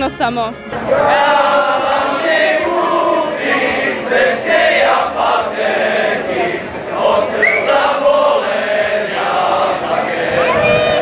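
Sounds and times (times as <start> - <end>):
group singing a folk song: 0.7 - 11.0.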